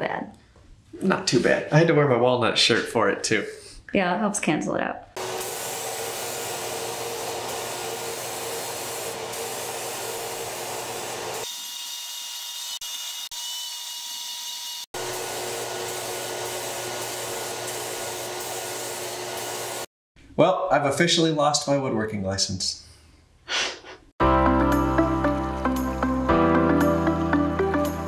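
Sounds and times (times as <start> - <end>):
paint spray gun hissing: 5.2 - 11.5, 15.0 - 19.9.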